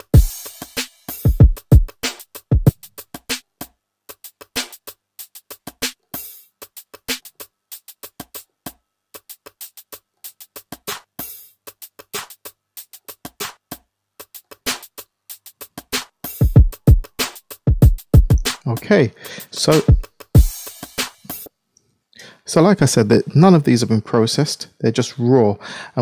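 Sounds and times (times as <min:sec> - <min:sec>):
drum machine clap: 0:00.0 - 0:03.5, 0:04.1 - 0:08.4, 0:09.2 - 0:21.5
clicky drum hits: 0:17.8 - 0:18.6.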